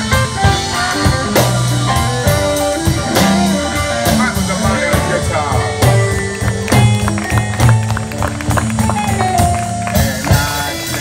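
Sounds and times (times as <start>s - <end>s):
drum kit beat: 0.0s - 11.0s
electric bass: 0.0s - 11.0s
electric guitar: 0.0s - 11.0s
keyboard: 0.0s - 11.0s.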